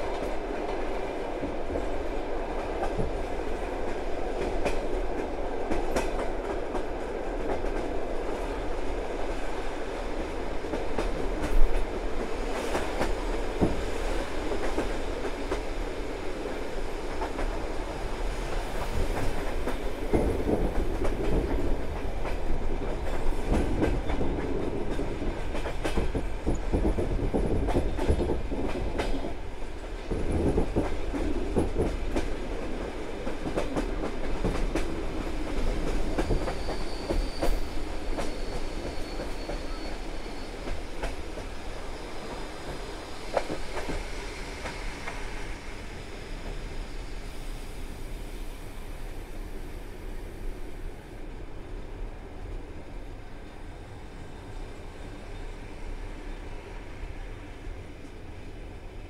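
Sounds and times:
train carriage rumbling on track: 0:00.0 - 0:59.0
faint high squeal: 0:36.1 - 0:40.9.

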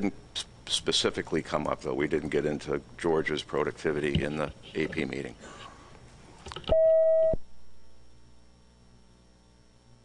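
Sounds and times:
electronic beep: 0:06.7 - 0:07.4.

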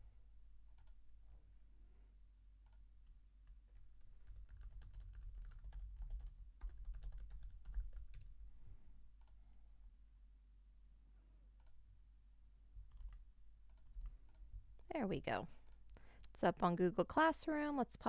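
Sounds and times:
low steady hum: 0:00.0 - 0:18.0
typing on computer keyboard: 0:04.0 - 0:08.3, 0:12.9 - 0:14.4.

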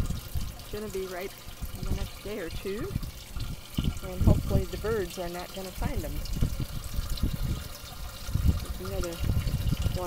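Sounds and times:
water trickling: 0:00.0 - 0:10.0
low rumbles on microphone: 0:01.6 - 0:05.0, 0:05.9 - 0:10.0.

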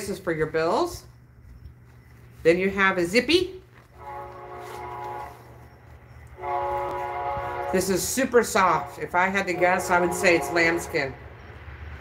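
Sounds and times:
horn blasts: 0:03.9 - 0:11.3.

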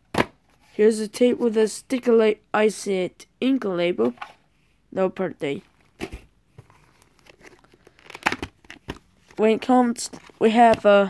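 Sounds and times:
paper crinkling rustles: 0:06.6 - 0:10.6.

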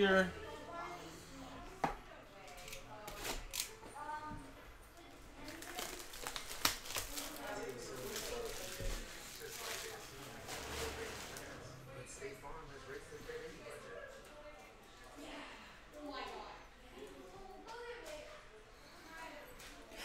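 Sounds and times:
plastic wrap crinkling and tearing: 0:05.4 - 0:11.8.

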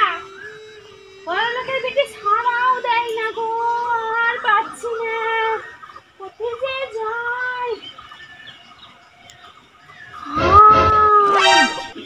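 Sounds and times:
wailing cries: 0:10.2 - 0:12.0.

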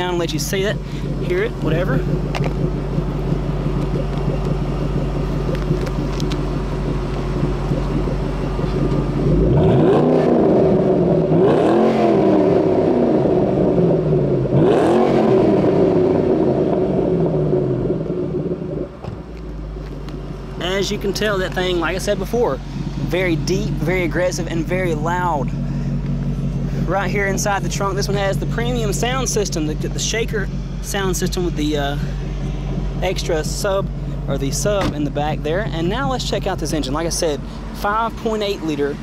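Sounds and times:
car engine idling and revving: 0:00.0 - 0:39.0.

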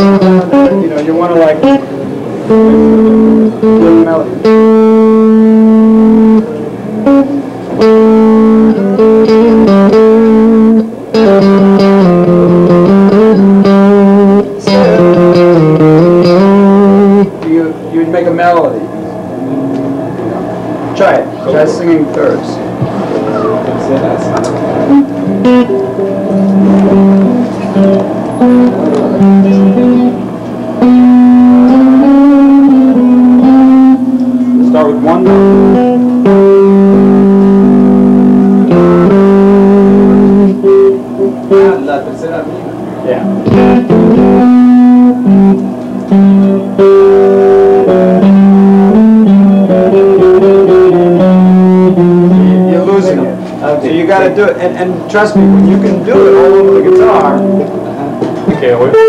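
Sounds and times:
electric guitar slow melody: 0:00.0 - 0:17.9, 0:18.7 - 0:21.7, 0:22.6 - 0:59.0.

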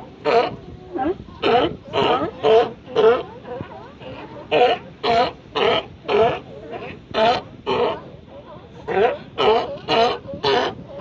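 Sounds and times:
sea lions barking: 0:00.1 - 0:03.4, 0:04.0 - 0:08.1, 0:08.8 - 0:11.0.

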